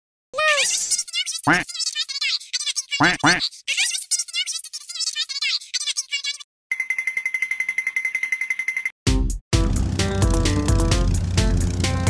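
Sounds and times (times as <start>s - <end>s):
cartoon characters chattering gibberish: 0.4s - 6.5s.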